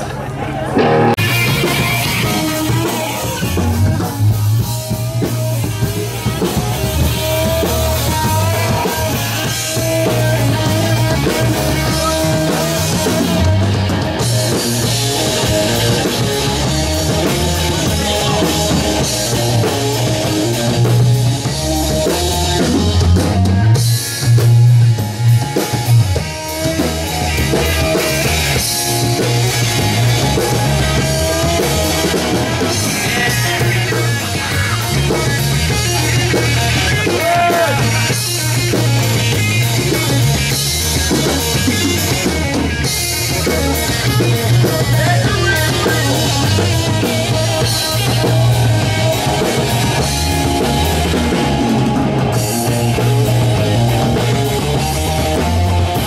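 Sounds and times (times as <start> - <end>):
bass guitar: 0.0 - 56.0
electric guitar: 0.0 - 56.0
drum kit beat: 0.8 - 56.0.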